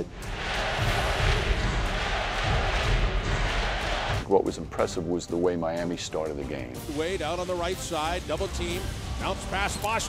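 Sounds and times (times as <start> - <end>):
crowd cheering: 0.0 - 4.2.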